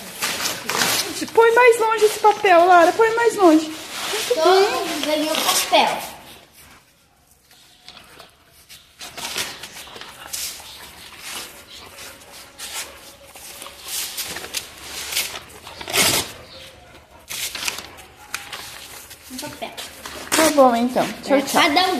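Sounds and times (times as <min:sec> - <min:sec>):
paper crackling and rustling: 0:00.0 - 0:06.4, 0:07.5 - 0:21.9
dogs scuffling: 0:00.0 - 0:21.9.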